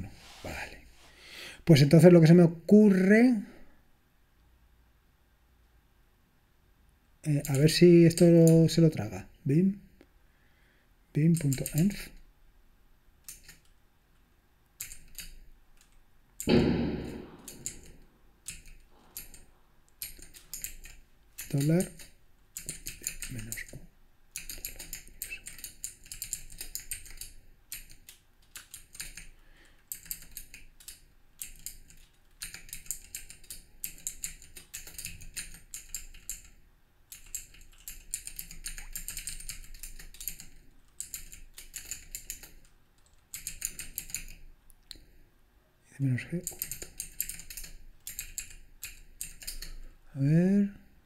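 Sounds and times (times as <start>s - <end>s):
computer keyboard typing: 11.2s - 12.1s, 13.2s - 13.8s, 14.8s - 16.0s, 17.5s - 19.4s, 20.0s - 44.4s, 46.4s - 49.8s.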